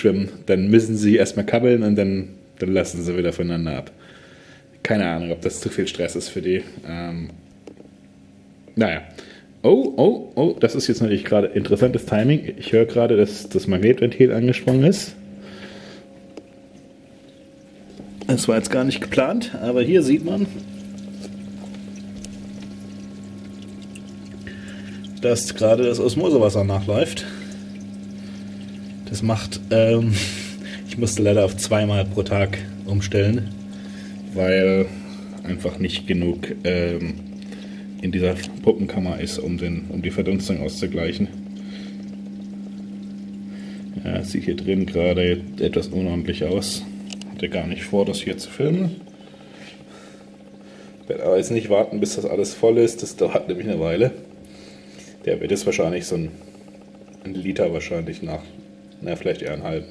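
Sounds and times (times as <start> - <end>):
constant low hum: 0.0 - 59.9
water splashing into tank: 14.4 - 59.9.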